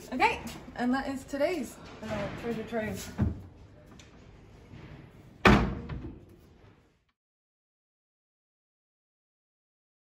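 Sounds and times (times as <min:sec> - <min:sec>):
wooden cupboard door banging shut: 0:05.4 - 0:06.1.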